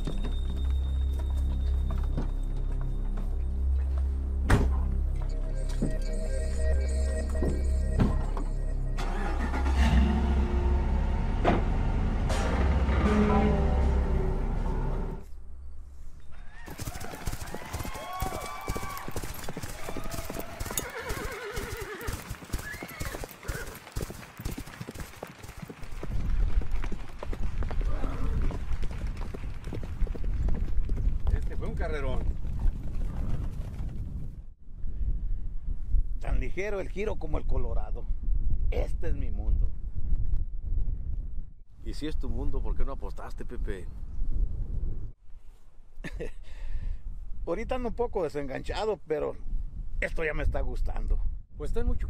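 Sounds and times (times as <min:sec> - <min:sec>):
hoofbeats on dirt: 0:00.0 - 0:04.1, 0:16.6 - 0:34.5
background music: 0:00.0 - 0:15.3
horses neighing: 0:20.2 - 0:23.8.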